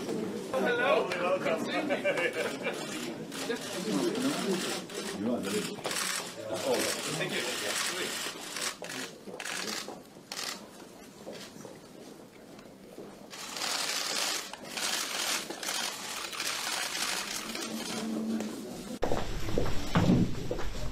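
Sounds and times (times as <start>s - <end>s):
people talking indistinctly: 0.5s - 10.6s.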